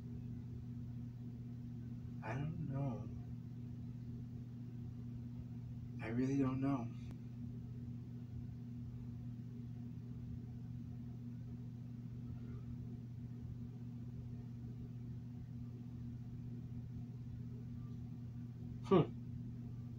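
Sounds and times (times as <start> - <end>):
faint room noise: 0.0 - 19.9
steady low hum: 0.0 - 19.9.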